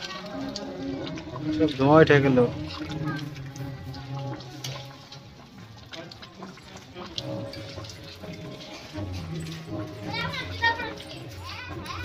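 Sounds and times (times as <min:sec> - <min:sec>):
children calling out: 0:09.9 - 0:12.0.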